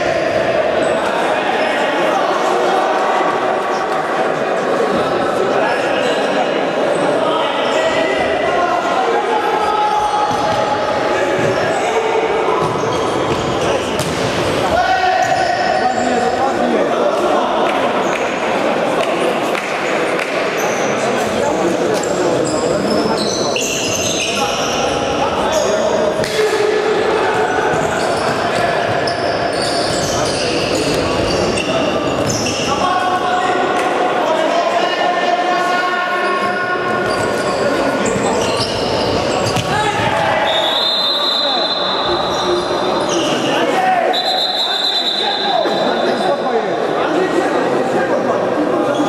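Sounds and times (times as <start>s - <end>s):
players shouting: 6.9s - 17.8s, 32.2s - 46.1s
shoes squeaking on court: 27.7s - 32.7s, 37.0s - 39.7s.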